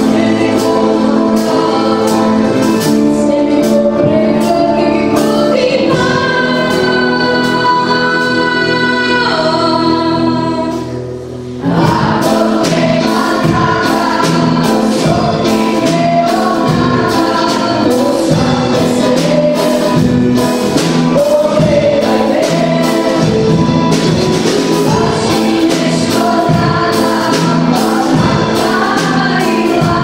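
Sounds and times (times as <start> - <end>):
choir singing: 0.0 - 30.0
small band with accordion: 0.0 - 30.0.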